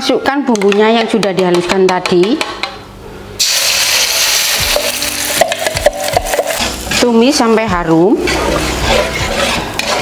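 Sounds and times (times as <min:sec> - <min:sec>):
spatula scraping a wok: 0:05.4 - 0:10.0.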